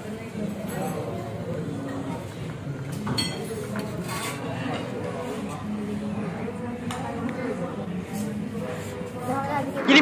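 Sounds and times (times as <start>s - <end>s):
diners chattering: 0.0s - 10.0s
cutlery clinking on plates: 2.9s - 5.6s.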